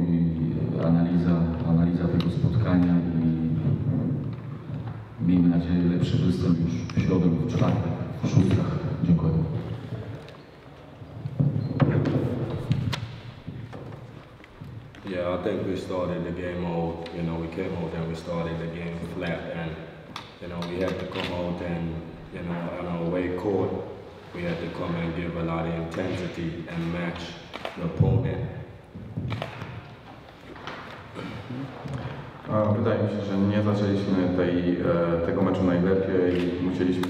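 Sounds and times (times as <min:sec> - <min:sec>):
man speaking into a microphone: 0:00.0 - 0:10.3, 0:15.0 - 0:29.8, 0:31.1 - 0:37.0.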